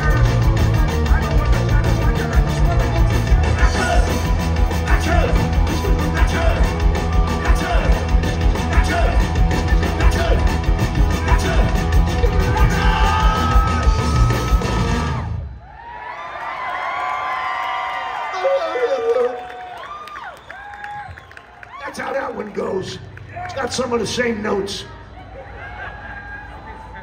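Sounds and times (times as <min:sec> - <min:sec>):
punk rock band playing live: 0:00.0 - 0:15.3
crowd cheering and whooping: 0:02.8 - 0:22.2, 0:25.0 - 0:27.0.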